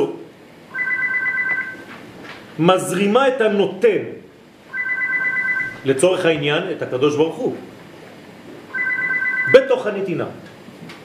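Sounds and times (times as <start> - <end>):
electronic telephone ring tone: 0.7 - 1.9, 4.7 - 5.9, 8.7 - 9.7.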